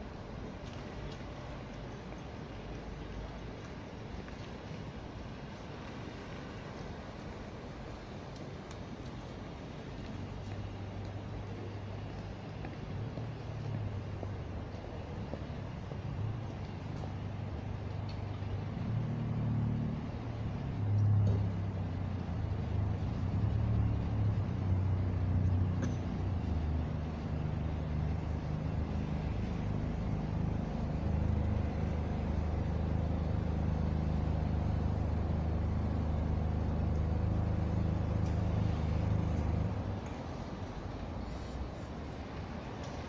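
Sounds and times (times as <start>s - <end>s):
car engines running slowly: 0.0s - 43.0s.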